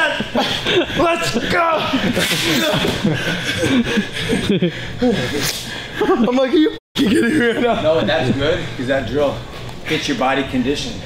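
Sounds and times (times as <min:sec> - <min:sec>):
men laughing: 0:00.0 - 0:08.6
men talking: 0:00.0 - 0:11.0.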